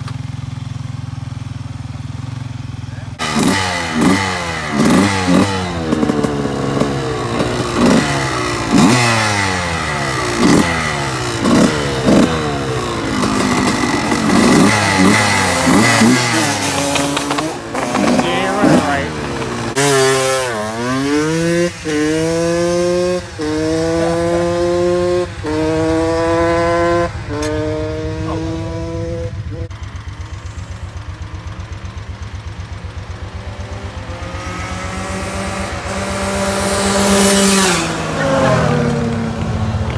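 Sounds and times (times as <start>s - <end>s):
dirt bike engine revving: 2.1s - 30.8s, 32.6s - 39.9s
low engine idle: 29.3s - 34.1s.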